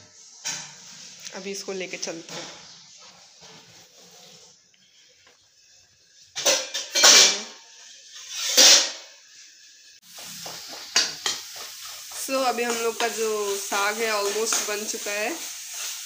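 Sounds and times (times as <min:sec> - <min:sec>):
food sizzling in a pan: 0:00.0 - 0:16.0
ladle stirring in a pan: 0:00.1 - 0:16.0
steel utensils clattering: 0:06.3 - 0:07.6.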